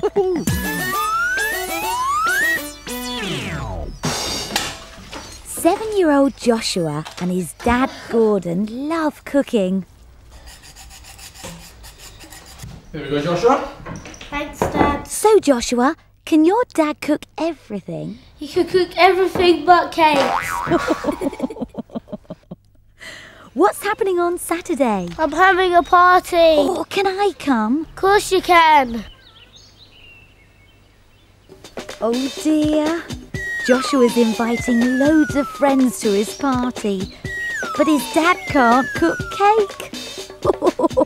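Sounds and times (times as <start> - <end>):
utensil scraping cookware: 10.4 - 12.6.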